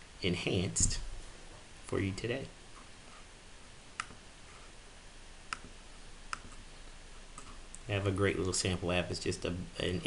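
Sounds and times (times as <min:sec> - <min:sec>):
low steady hiss: 0:00.0 - 0:10.0
computer mouse clicks: 0:04.0 - 0:04.2, 0:05.5 - 0:05.7, 0:06.3 - 0:06.6.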